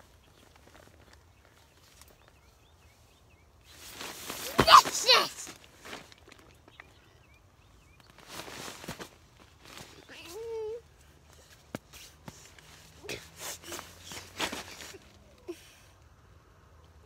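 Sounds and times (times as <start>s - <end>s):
rustling on tent floor: 0.0s - 15.8s.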